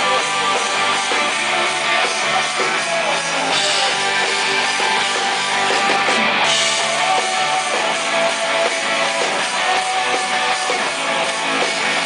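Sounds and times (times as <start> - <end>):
rock band playing: 0.0 - 12.0.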